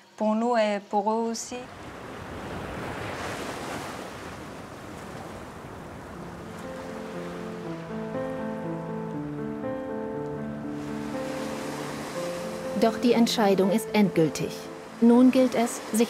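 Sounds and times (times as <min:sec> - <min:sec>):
ocean surf washing on beach: 0:01.6 - 0:16.0
soft background music: 0:06.0 - 0:16.0.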